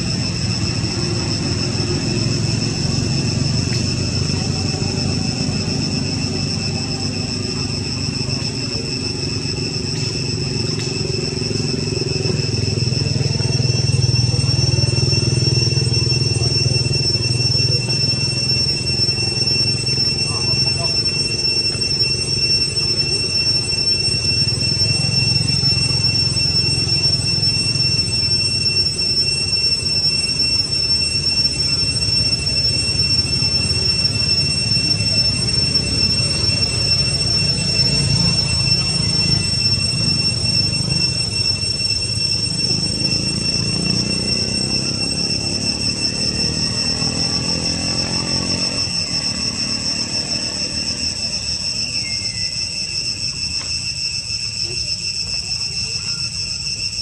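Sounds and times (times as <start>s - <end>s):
low hum falling in pitch: 0.0s - 53.8s
high-pitched insect drone: 0.0s - 57.0s.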